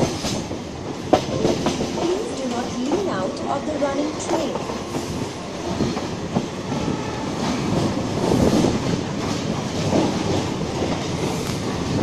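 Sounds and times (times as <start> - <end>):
train rumble: 0.0 - 12.0.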